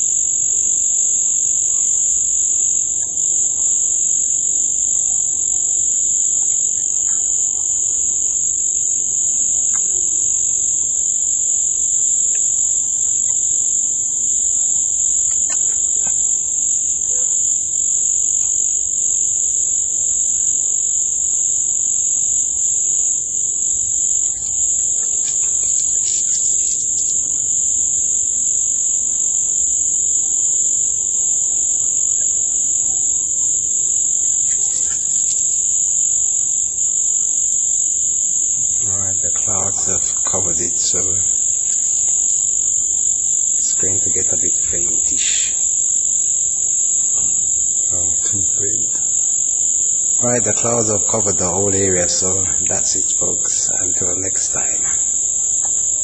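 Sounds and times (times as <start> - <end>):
high-pitched whine: 47.0 - 49.3, 50.2 - 55.8.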